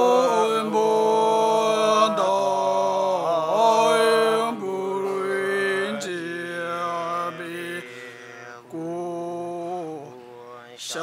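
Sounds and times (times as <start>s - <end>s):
male monks chanting: 0.0s - 11.0s.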